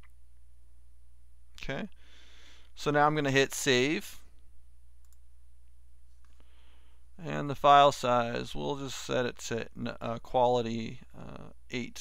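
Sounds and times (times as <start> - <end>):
low electrical hum: 0.0 - 12.0
computer mouse clicking: 5.0 - 5.2.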